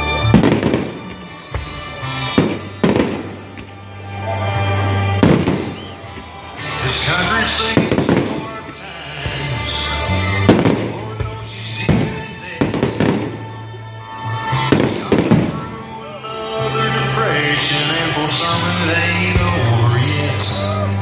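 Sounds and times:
music playing: 0.0 - 21.0
fireworks bursting with bangs: 0.3 - 3.8, 5.2 - 6.4, 7.6 - 9.4, 10.3 - 13.7, 14.5 - 16.0.

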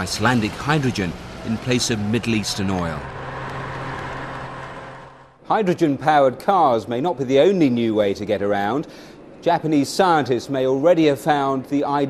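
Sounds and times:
vehicle driving past: 0.0 - 5.4.

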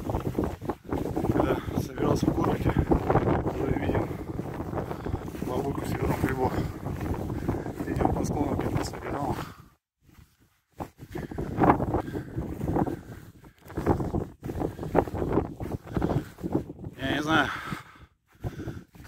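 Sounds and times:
wind buffeting microphone: 0.0 - 19.0
man talking: 1.4 - 4.2, 5.4 - 6.8, 7.8 - 9.5, 16.9 - 17.6.

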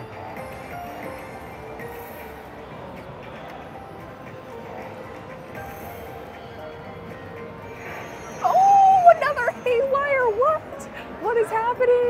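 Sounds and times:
slot machine music: 0.0 - 12.0.

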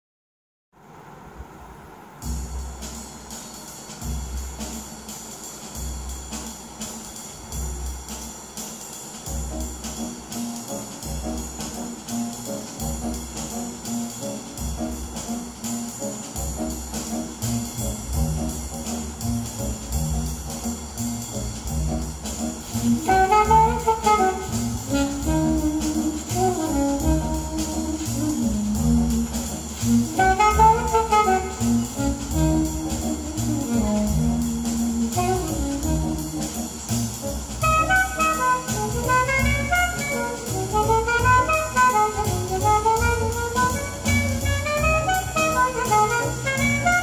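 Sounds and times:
drum groove with bass line: 2.2 - 47.0.

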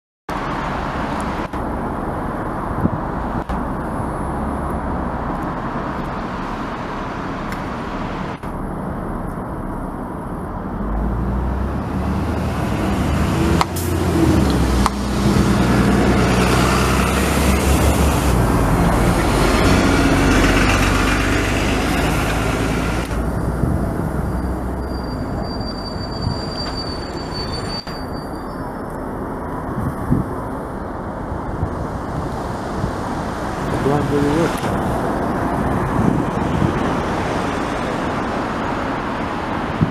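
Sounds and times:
diesel bus engines running: 0.3 - 39.9
bus engine rumbling past: 10.4 - 39.9.

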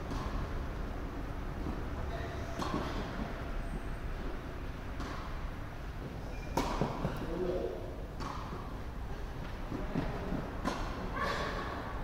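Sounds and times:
low indoor hall rumble: 0.0 - 12.0.

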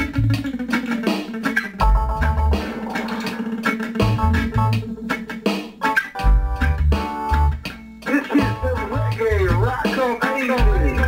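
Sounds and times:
bass guitar low notes: 0.0 - 1.0, 1.7 - 5.4, 6.0 - 7.8, 8.4 - 9.8, 10.6 - 11.0.

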